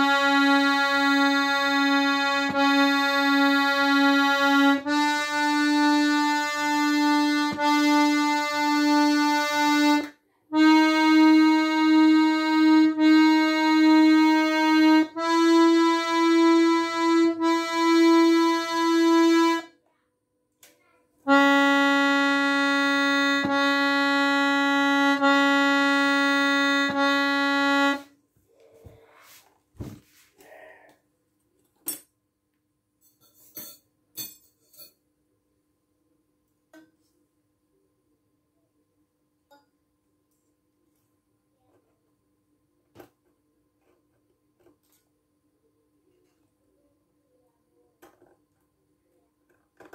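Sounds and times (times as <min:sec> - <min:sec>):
accordion sustained note: 0:00.0 - 0:19.7, 0:21.3 - 0:28.1.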